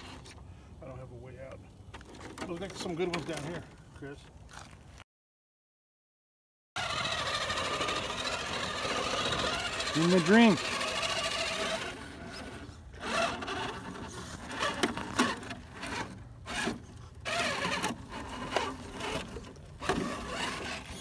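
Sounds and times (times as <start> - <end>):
electric motor and gearbox whirring: 6.8 - 21.0
tires scrabbling on rock: 6.8 - 21.0.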